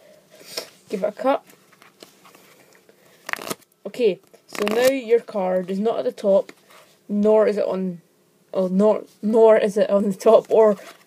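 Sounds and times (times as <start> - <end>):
playing cards being cut: 3.2 - 3.6, 4.5 - 5.0.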